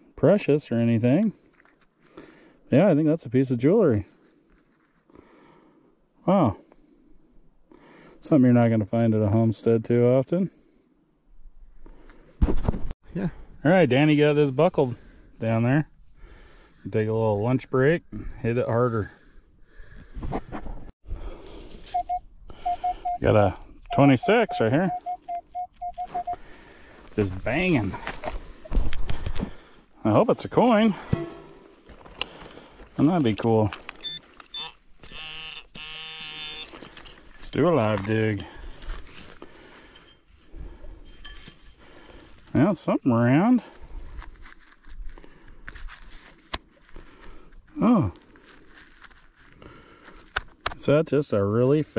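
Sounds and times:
rustling and handling noise: 0:04.1 - 0:05.1, 0:36.6 - 0:42.6, 0:43.9 - 0:50.8
metal detector beeps: 0:21.9 - 0:26.4, 0:34.0 - 0:36.8.

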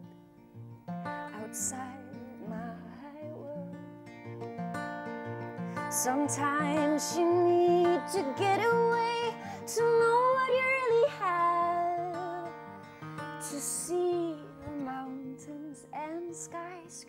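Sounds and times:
acoustic guitar: 0:00.0 - 0:17.0
woman singing: 0:01.3 - 0:04.0, 0:05.7 - 0:17.0.

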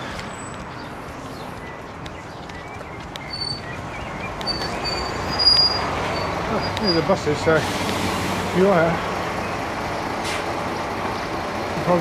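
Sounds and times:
bus engine and road noise: 0:00.0 - 0:12.0
high brake squeals: 0:03.3 - 0:03.7, 0:04.4 - 0:08.2.

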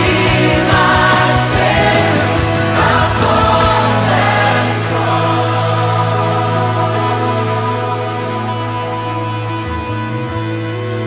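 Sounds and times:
person singing lead vocals: 0:00.0 - 0:09.7
choir-like backing voices: 0:00.0 - 0:09.8
worship song with held chords: 0:00.0 - 0:11.0.

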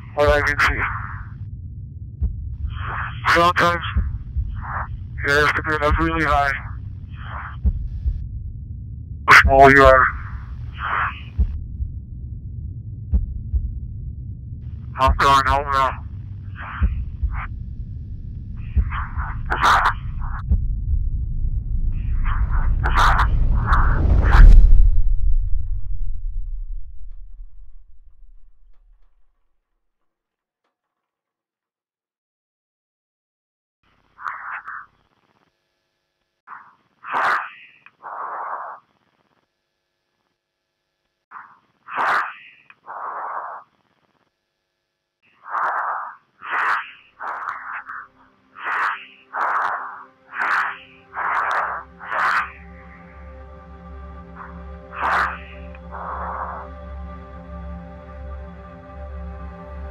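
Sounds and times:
deep low rumble: 0:00.0 - 0:29.3, 0:51.2 - 0:59.9
soft music: 0:48.4 - 0:59.9.

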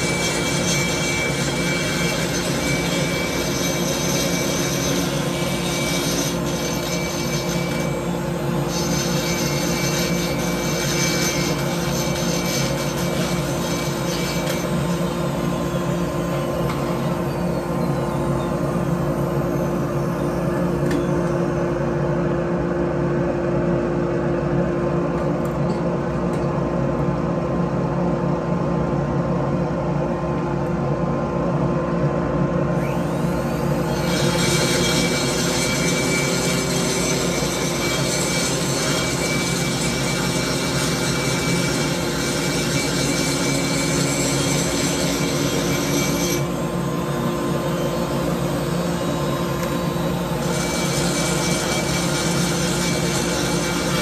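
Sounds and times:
grinding rasp on metal: 0:00.0 - 0:19.7, 0:32.8 - 0:54.0
rotary grinder whining: 0:00.0 - 0:21.6, 0:32.8 - 0:54.0.

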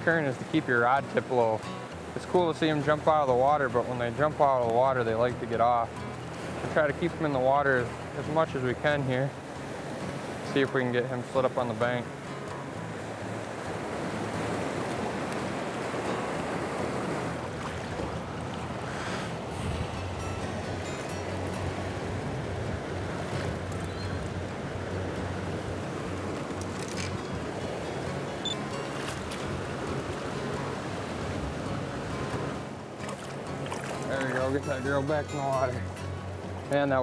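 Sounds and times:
river current rushing: 0:00.0 - 0:37.0
water splashes: 0:00.0 - 0:37.0.

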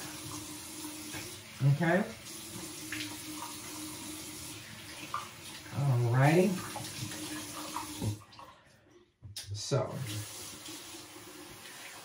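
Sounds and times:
faucet running into sink: 0:00.0 - 0:08.5, 0:09.9 - 0:12.0
water splashing over washcloth: 0:00.0 - 0:08.8.

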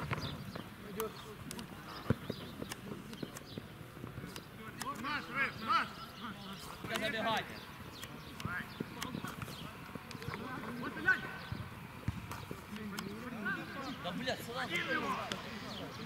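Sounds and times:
ball kick thuds: 0:11.5 - 0:12.6
players shouting: 0:12.8 - 0:16.0.

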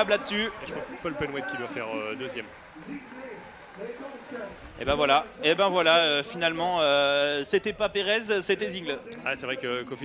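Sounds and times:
man speaking loudly: 0:00.0 - 0:10.0.

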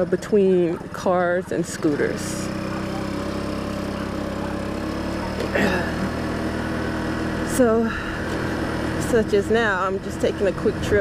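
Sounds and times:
scooter engine running: 0:00.0 - 0:11.0.

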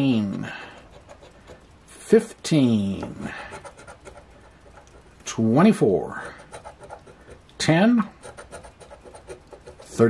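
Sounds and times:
coin scraping scratch card: 0:00.7 - 0:01.6, 0:03.0 - 0:05.1, 0:06.1 - 0:10.0.

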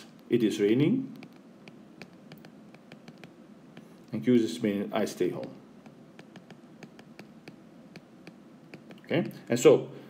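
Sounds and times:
stylus tapping on glass screen: 0:01.1 - 0:04.0, 0:05.4 - 0:09.4.

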